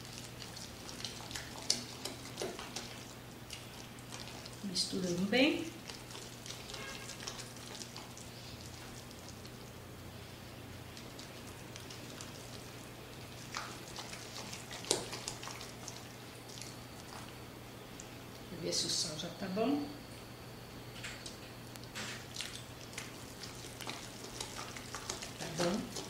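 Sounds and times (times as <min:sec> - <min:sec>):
spatula stirring mashed potato: 0:00.0 - 0:09.7, 0:10.9 - 0:17.3, 0:22.8 - 0:26.0.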